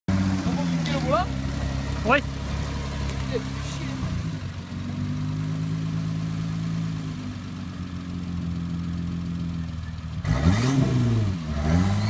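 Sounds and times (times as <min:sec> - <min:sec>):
engine idling: 0:00.1 - 0:12.0
person's voice: 0:00.4 - 0:01.4, 0:03.2 - 0:04.2.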